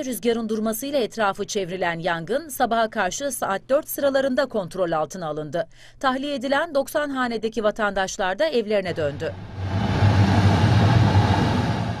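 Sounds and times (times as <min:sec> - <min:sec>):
aircraft cabin engine hum: 0:08.9 - 0:12.0
airflow rushing: 0:08.9 - 0:12.0.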